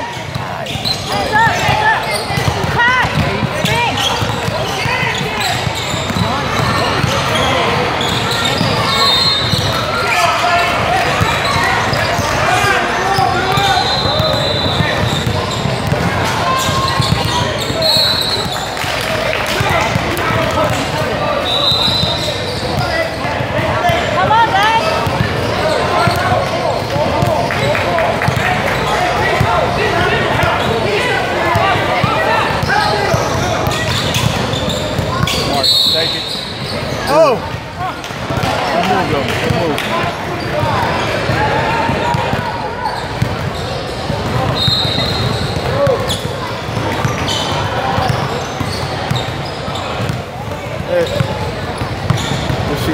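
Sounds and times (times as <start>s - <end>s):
sneakers squeaking on court: 0.0s - 52.9s
spectator chatter: 0.0s - 52.9s
basketball bouncing on hardwood floor: 15.0s - 16.1s.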